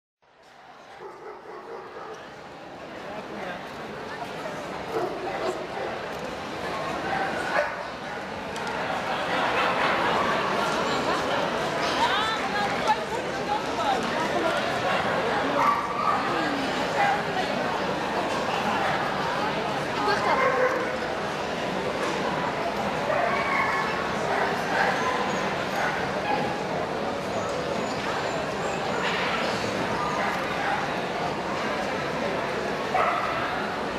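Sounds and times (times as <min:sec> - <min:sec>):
crowd chatter in a hall: 0:00.2 - 0:33.9
dog barking: 0:01.0 - 0:02.2, 0:33.0 - 0:33.4.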